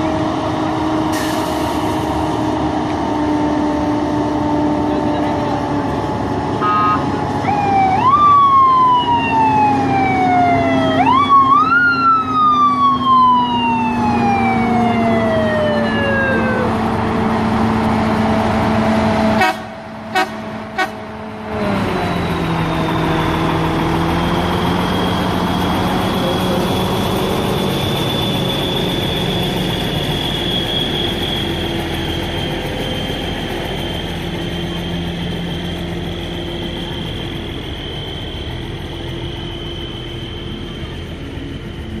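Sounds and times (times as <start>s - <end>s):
truck engines droning: 0.0s - 42.0s
siren wailing: 6.5s - 17.8s, 21.5s - 42.0s.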